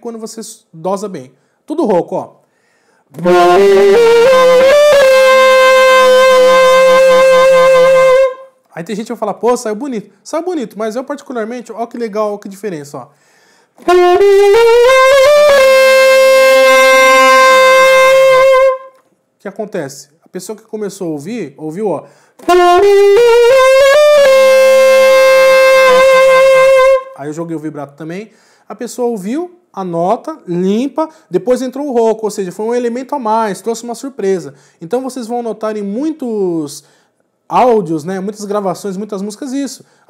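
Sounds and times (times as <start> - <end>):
growling saxophone: 3.2 - 8.5, 13.8 - 18.9, 22.4 - 27.2.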